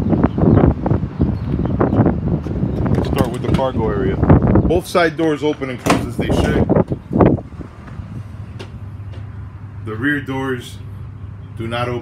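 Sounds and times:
thump in metal cargo area: 0:05.8 - 0:06.6.

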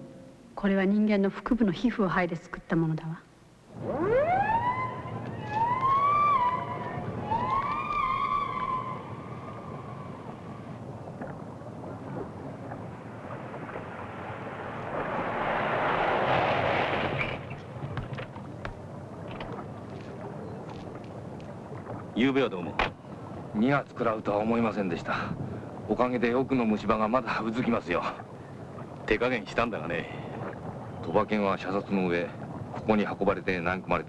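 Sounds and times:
siren wailing: 0:03.7 - 0:10.8
rushing vehicle: 0:13.4 - 0:18.2.

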